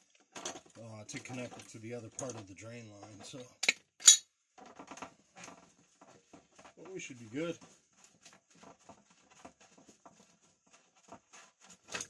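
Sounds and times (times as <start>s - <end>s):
pipe and tools clicking: 3.1s - 6.6s.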